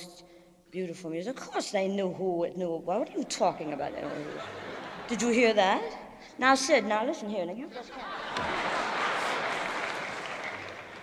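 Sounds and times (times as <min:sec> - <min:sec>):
crowd applause: 0:08.0 - 0:11.0.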